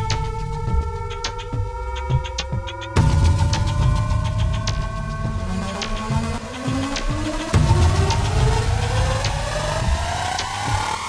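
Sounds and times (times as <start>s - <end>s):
low pulsing bass: 0.0s - 11.0s
rising synth tone: 0.0s - 11.0s
high ticks: 1.0s - 7.5s.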